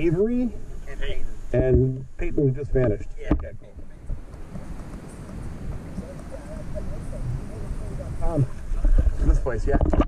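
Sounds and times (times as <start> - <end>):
voices: 0.0 - 9.9
low water rumble: 0.0 - 10.0
water splashing against camera: 3.3 - 10.0.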